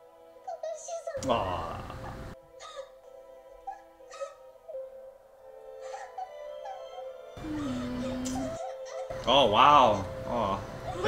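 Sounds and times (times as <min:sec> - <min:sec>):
soft sustained soundtrack music: 0:00.0 - 0:11.0.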